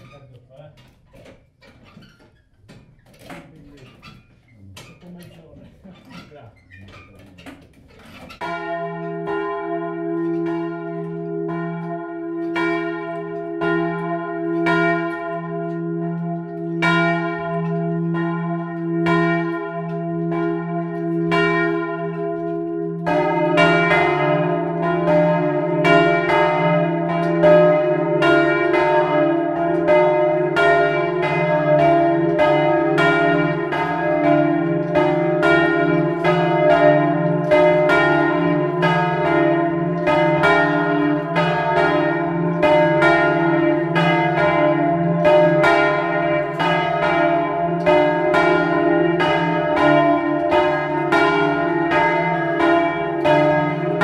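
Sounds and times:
church bells ringing: 0:08.3 - 0:54.0.

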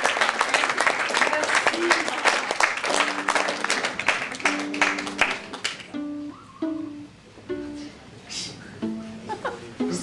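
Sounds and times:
plucked electric guitar notes: 0:04.4 - 0:08.0.

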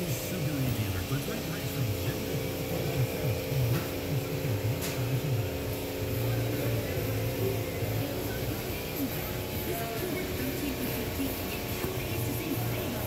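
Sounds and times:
electrical hum: 0:00.0 - 0:13.0
indistinct low voices talking: 0:00.0 - 0:13.0.

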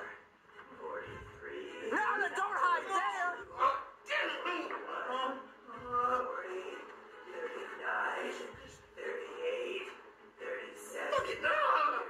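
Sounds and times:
voice over music: 0:00.0 - 0:12.0.

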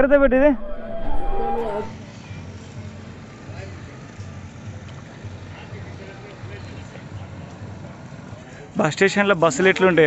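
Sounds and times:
loud wavering call: 0:00.3 - 0:02.0.

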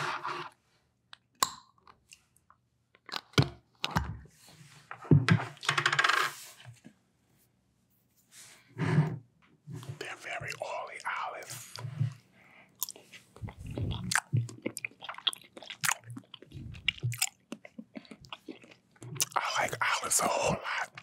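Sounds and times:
soft murmured voice: 0:09.8 - 0:11.8, 0:19.3 - 0:21.0.

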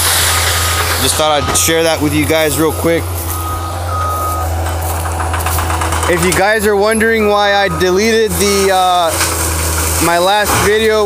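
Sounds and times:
engine low drone: 0:00.0 - 0:11.0
backup alarm beeps: 0:00.1 - 0:05.1, 0:06.1 - 0:09.0.

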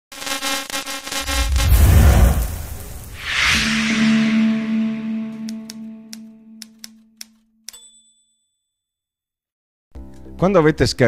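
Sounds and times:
brief high ping: 0:03.4 - 0:07.0
held low tone: 0:03.5 - 0:06.8.

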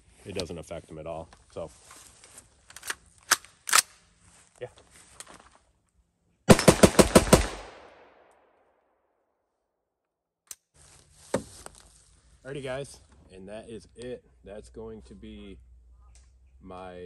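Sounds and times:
gun firing rapid burst: 0:06.5 - 0:07.9.

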